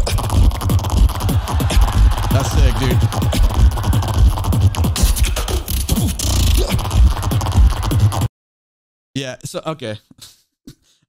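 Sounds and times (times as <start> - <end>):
beatboxing into a microphone: 0.0 - 8.3, 10.1 - 11.0.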